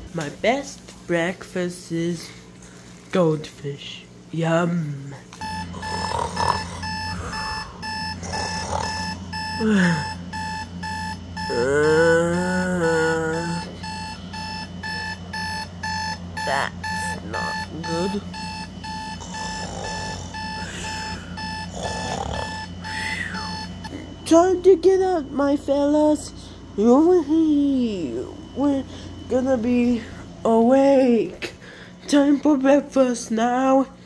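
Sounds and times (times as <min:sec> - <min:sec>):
alarm clock beeping: 0:05.4 - 0:31.2.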